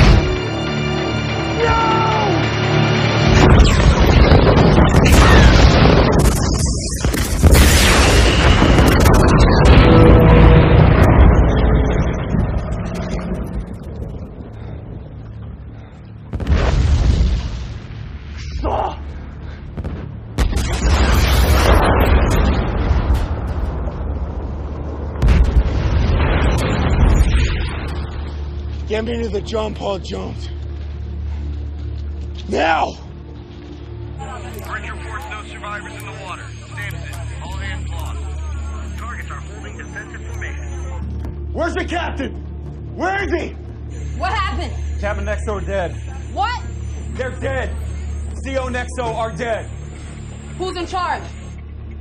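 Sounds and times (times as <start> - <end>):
heavy explosions: 0.0 - 0.8, 2.6 - 18.4, 19.3 - 29.6
dramatic orchestral score: 0.0 - 52.0.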